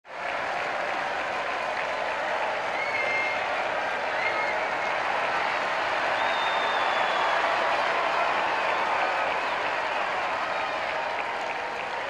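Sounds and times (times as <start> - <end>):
crowd applauding: 0.1 - 12.0.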